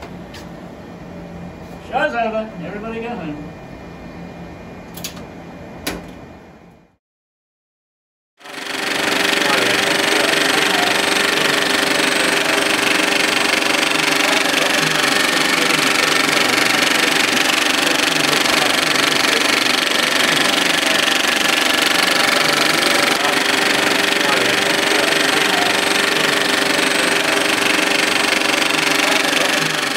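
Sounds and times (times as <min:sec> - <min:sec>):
film projector clattering: 0:08.4 - 0:29.9.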